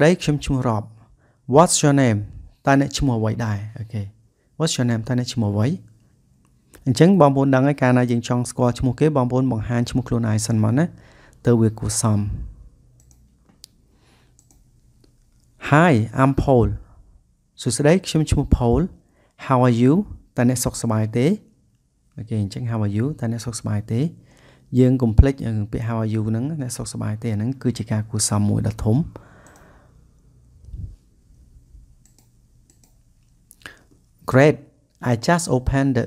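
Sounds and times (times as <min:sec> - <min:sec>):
computer mouse click: 0:13.0 - 0:15.6, 0:29.4 - 0:29.8, 0:32.0 - 0:34.2.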